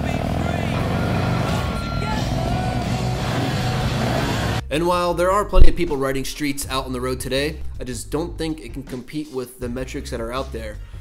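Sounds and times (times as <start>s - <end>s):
motorcycle engine rumbling: 0.0s - 4.6s
music: 0.0s - 11.0s.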